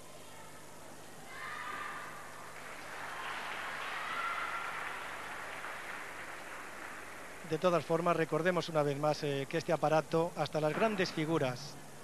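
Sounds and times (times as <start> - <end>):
audience applauding: 2.6 - 8.4.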